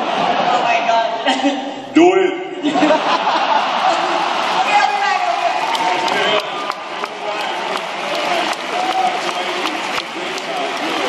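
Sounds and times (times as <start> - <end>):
audience applauding: 3.5 - 11.0
voices under applause: 3.6 - 11.0.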